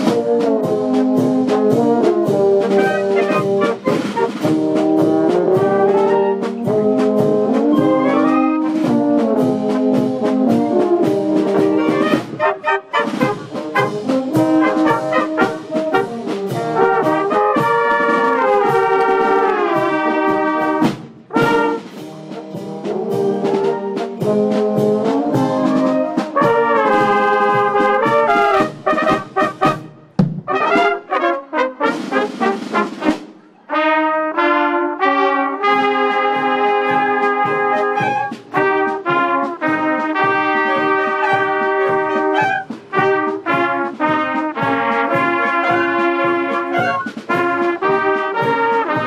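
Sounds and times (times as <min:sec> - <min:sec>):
brass band playing folk music: 0:00.0 - 0:49.0
flugelhorns and trumpets: 0:00.0 - 0:49.0
clarinets playing: 0:02.6 - 0:04.4, 0:07.7 - 0:08.7, 0:11.6 - 0:16.0, 0:37.2 - 0:38.8, 0:39.4 - 0:43.3, 0:45.0 - 0:48.5.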